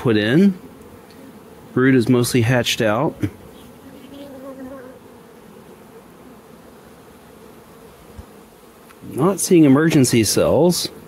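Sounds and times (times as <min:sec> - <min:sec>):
bee droning close: 0:00.0 - 0:11.0
bees buzzing: 0:00.0 - 0:11.0.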